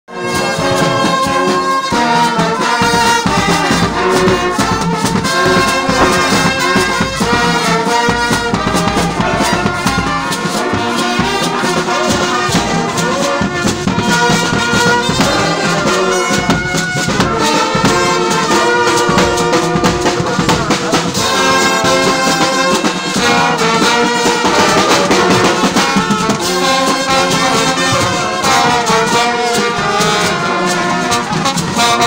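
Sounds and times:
brass band playing: 0.1 - 32.0.

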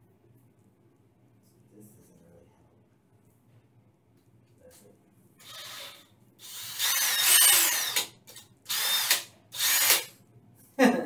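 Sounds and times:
cordless drill motor whining: 5.4 - 10.1.

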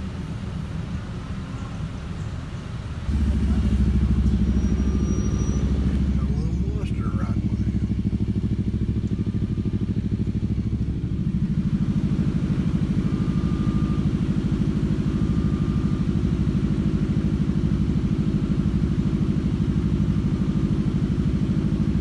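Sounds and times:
engine idling with lumpy beat: 0.0 - 22.0
faint short beeps: 3.6 - 7.4.

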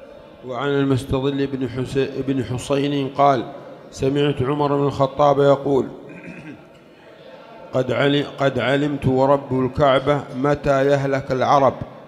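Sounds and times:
man speaking: 7.7 - 11.9.

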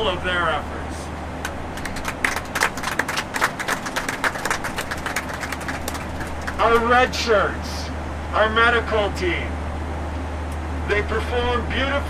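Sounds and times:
people clapping: 1.4 - 6.9.

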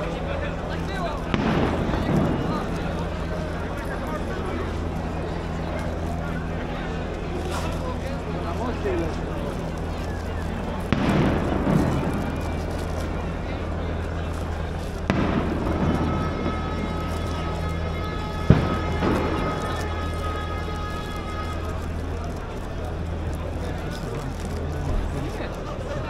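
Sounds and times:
crowd noise: 0.0 - 26.0
steady low hum: 0.0 - 26.0
firecracker bangs echoing: 0.6 - 7.0, 10.9 - 23.2
short crackle: 5.8 - 26.0.

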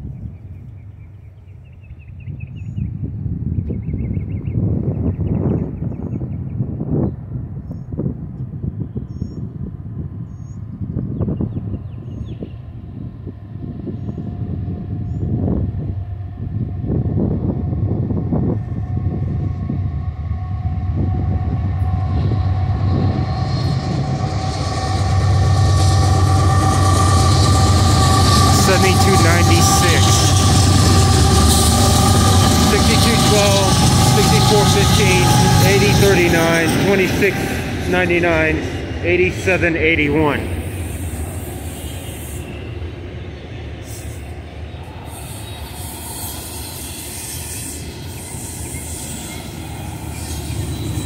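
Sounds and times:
diesel locomotive rumble: 6.6 - 51.0.

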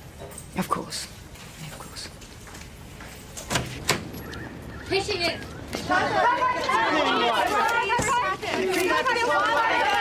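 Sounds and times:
people talking: 4.9 - 10.0.

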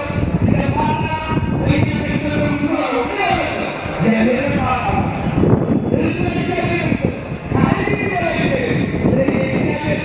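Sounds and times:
man preaching: 0.0 - 5.2, 5.9 - 10.0.

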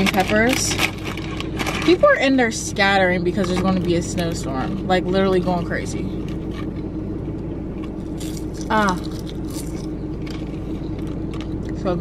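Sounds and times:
crunching and chewing: 0.0 - 2.0, 6.1 - 11.8
plastic package crinkling: 0.0 - 2.0
car interior hum: 0.0 - 12.0.

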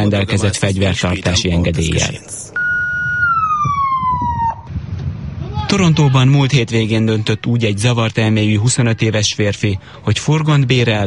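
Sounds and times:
street noise: 0.0 - 11.0
emergency vehicle siren: 2.6 - 4.9.

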